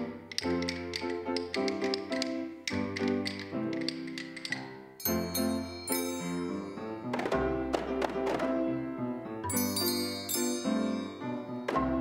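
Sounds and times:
wooden bass bars: 0.0s - 4.8s
accompanying music: 0.0s - 12.0s
rhythm sticks and hand drums: 7.0s - 8.6s.

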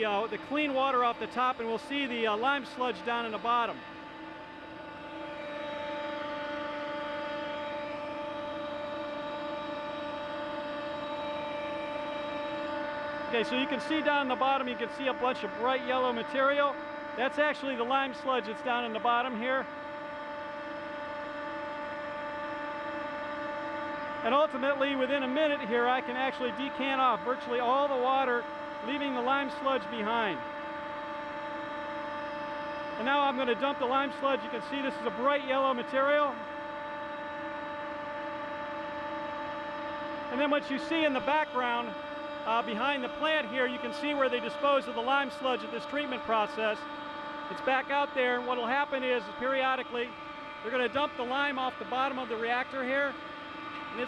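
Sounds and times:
machinery hum: 0.0s - 54.0s.

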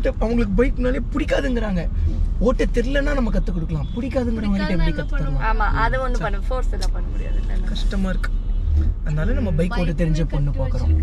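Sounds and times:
car cabin rumble: 0.0s - 11.0s.

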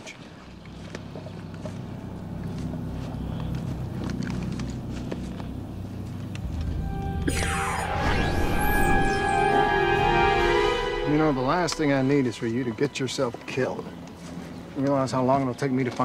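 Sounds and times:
dramatic music with low pulsing throb: 0.2s - 16.0s
shimmering high tones with falling sweep: 6.4s - 13.3s.

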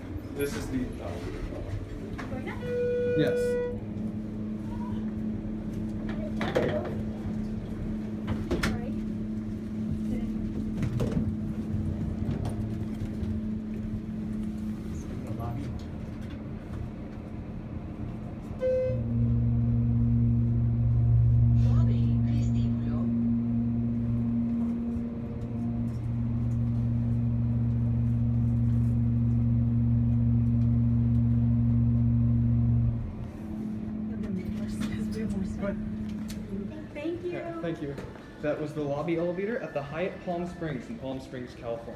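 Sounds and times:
elevator pump humming: 0.0s - 41.9s
short beep: 2.6s - 3.8s, 18.6s - 19.2s.

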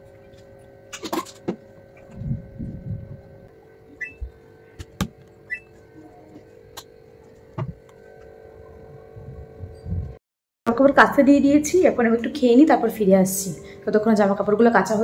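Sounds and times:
washing machine hum: 0.0s - 15.0s.

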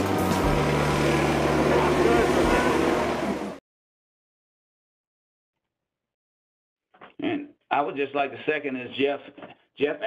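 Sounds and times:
bus engine hum: 0.0s - 3.6s.

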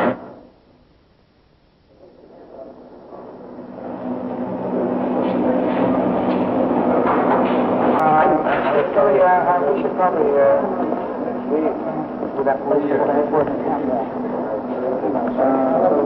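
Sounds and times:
low hum: 0.0s - 16.0s
murmur of voices: 4.6s - 16.0s.

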